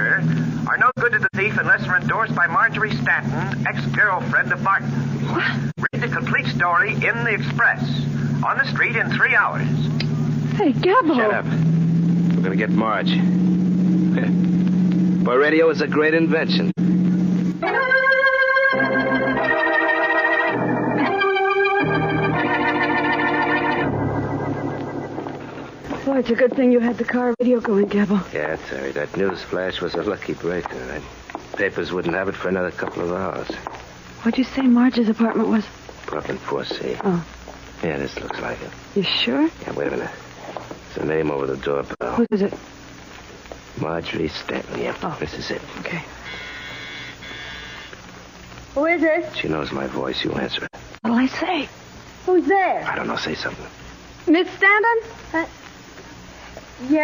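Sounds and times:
organ chords: 0.0s - 26.3s
doorbell buzzer: 46.2s - 48.0s.

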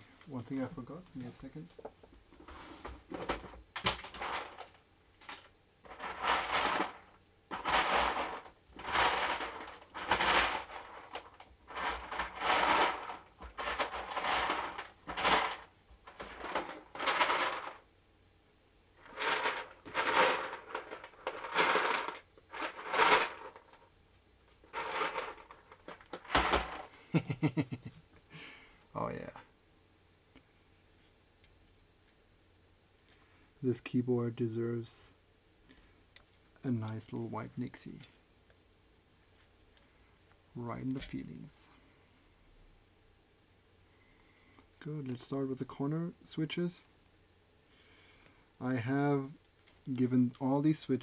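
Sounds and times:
rustling and scraping: 1.2s - 17.9s, 19.0s - 27.0s.

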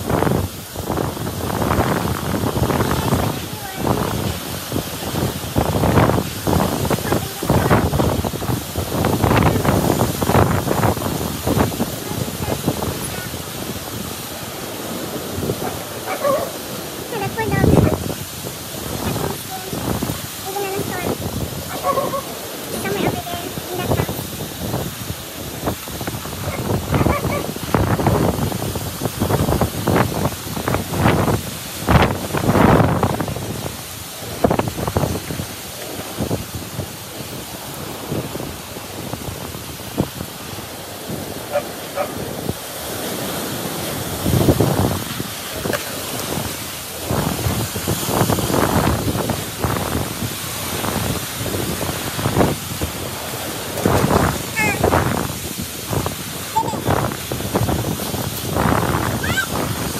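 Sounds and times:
strong wind gusting: 0.0s - 59.9s
wind striking microphone: 0.0s - 59.9s.

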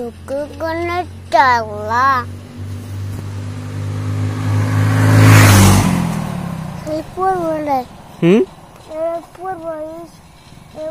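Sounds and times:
vehicle driving past: 0.2s - 10.8s.

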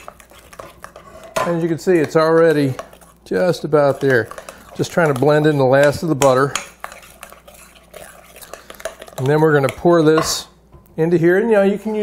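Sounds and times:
spoon stirring thick batter: 0.0s - 12.0s.

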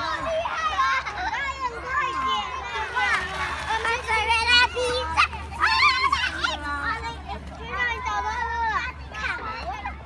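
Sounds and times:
children calling and chattering: 0.0s - 10.0s.

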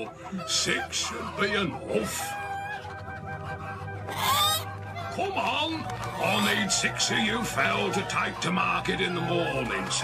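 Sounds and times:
hen squawking: 0.0s - 10.0s.

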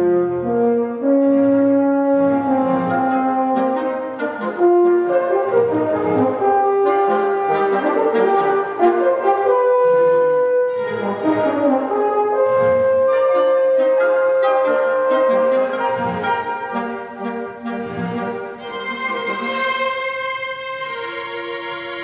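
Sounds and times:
chamber orchestra playing: 0.0s - 22.0s.

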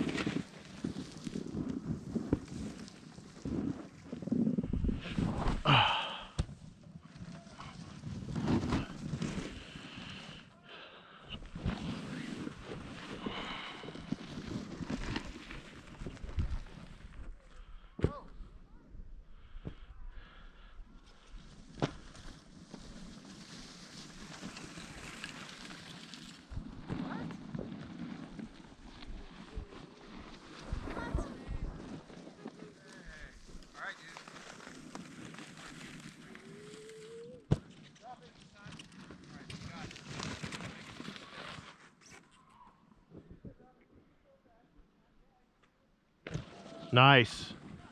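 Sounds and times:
wind noise on microphone: 3.4s - 5.7s.

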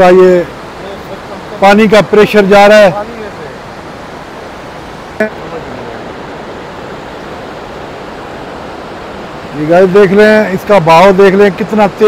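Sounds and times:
river rushing over rocks: 0.0s - 12.0s.

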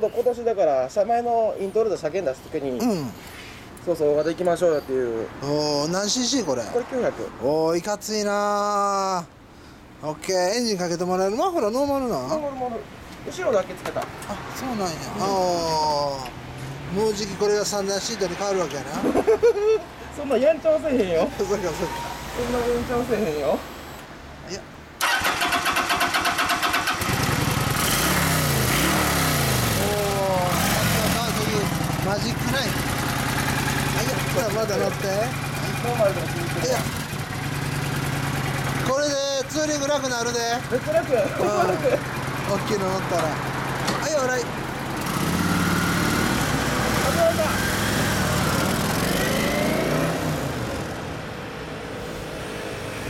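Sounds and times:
motorcycle engine idling: 29.6s - 44.8s.

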